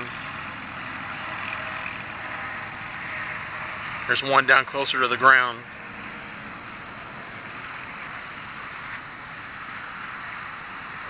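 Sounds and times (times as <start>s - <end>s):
even outdoor hiss: 0.0s - 11.0s
faint high whine: 0.0s - 11.0s.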